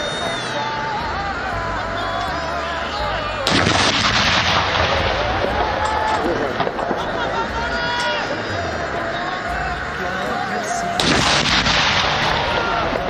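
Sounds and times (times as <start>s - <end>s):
artillery gun firing: 3.4s - 7.3s, 11.0s - 13.0s.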